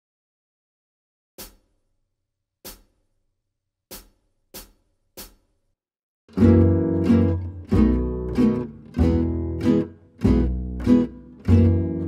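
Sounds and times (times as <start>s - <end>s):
music: 6.3s - 12.0s.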